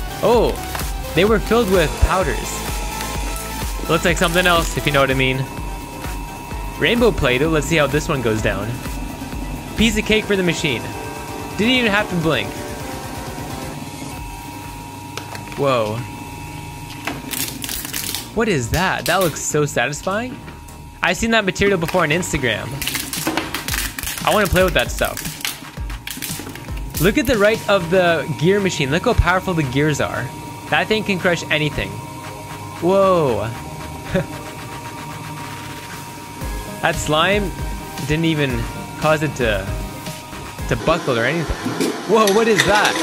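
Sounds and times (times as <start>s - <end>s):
shredder humming: 0.0s - 43.0s
plastic tub cracking and crunching: 22.8s - 27.4s.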